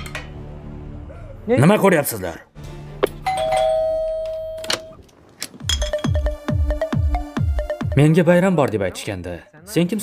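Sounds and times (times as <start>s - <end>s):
two-tone doorbell chime: 3.3s - 5.0s.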